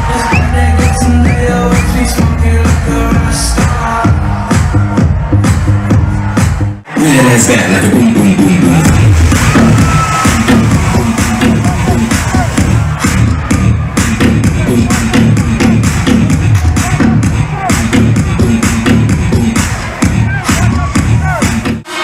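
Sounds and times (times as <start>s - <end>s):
crowd cheering: 0.0s - 7.8s, 8.4s - 22.0s
electronic dance music: 0.0s - 22.0s.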